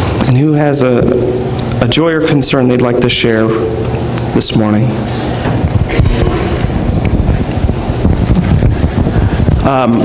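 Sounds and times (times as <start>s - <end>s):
loud low rumbling: 0.0s - 10.0s.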